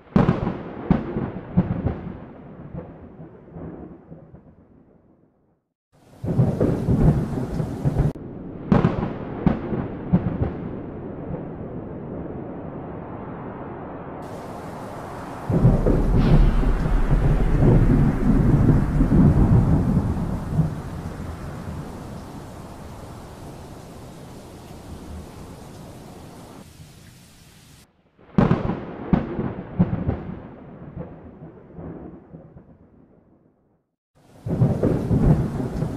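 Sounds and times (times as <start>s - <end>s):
thunder rumbling: 0.0s - 4.7s, 6.1s - 26.7s, 28.2s - 33.1s, 34.3s - 35.9s
loud thunder: 0.2s - 4.5s, 6.2s - 13.0s, 14.2s - 23.6s, 28.3s - 32.8s, 34.4s - 35.9s
rain hiss: 6.0s - 8.2s, 14.2s - 27.9s, 34.2s - 35.9s.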